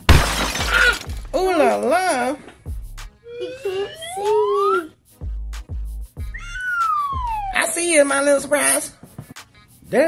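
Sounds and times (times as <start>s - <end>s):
whistle-like rising tone: 3.2s - 5.0s, 6.3s - 7.9s.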